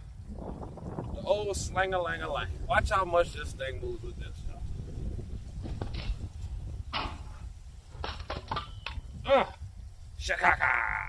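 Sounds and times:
wind on microphone: 0:00.0 - 0:11.0
sling hitting metal plate: 0:06.9 - 0:09.1.

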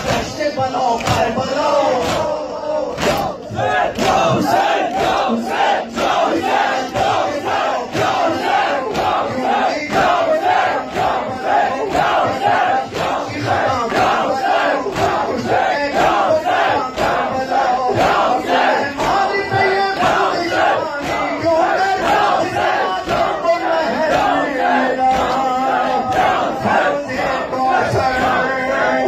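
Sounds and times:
crowd of men chanting: 0:00.0 - 0:29.0.

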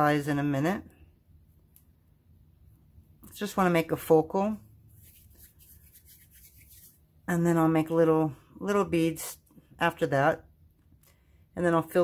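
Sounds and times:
hands rubbing clay: 0:04.8 - 0:07.1.

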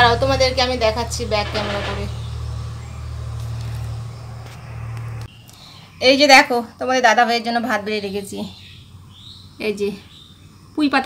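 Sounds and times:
low hum: 0:00.0 - 0:05.3.

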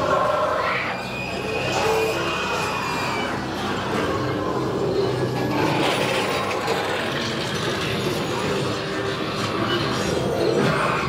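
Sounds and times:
ambient spooky music: 0:00.0 - 0:11.0.

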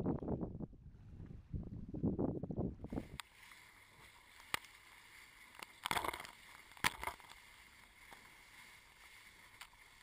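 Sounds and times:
water rushing along a raft: 0:03.0 - 0:10.0
small tick: 0:04.4 - 0:04.8, 0:09.5 - 0:09.8.

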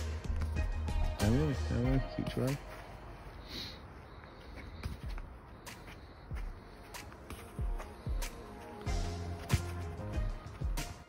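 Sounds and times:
footsteps on grass: 0:02.2 - 0:10.8
football being dribbled: 0:04.6 - 0:09.8.

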